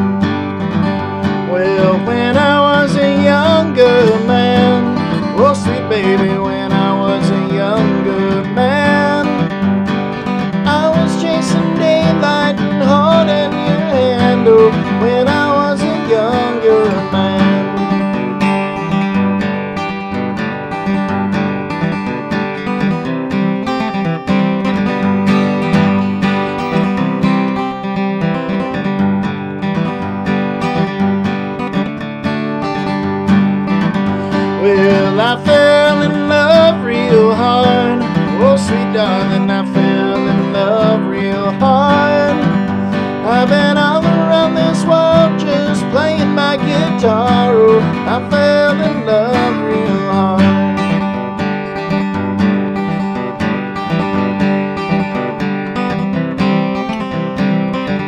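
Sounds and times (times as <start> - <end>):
acoustic guitar strumming: 0.0 - 58.0
man singing: 1.4 - 9.7, 10.3 - 18.7, 34.2 - 51.1.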